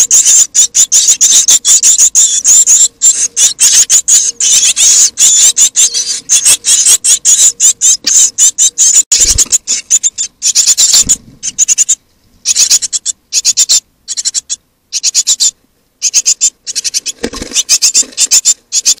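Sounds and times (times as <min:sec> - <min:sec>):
nestlings begging calls: 0:00.0 - 0:19.0.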